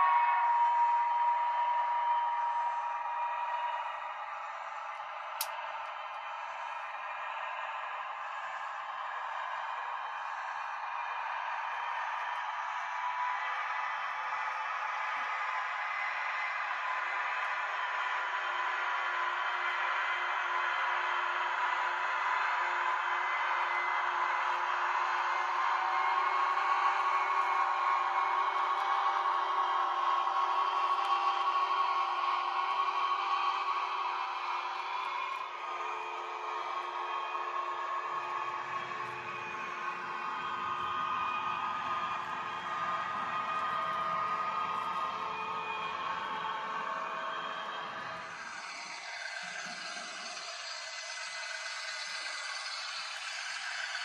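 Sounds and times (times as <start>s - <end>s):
model train motors whirring: 33.8s - 54.0s.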